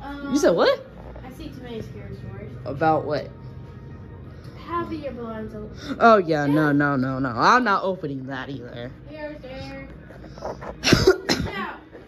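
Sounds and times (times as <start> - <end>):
person coughing: 10.6 - 11.8.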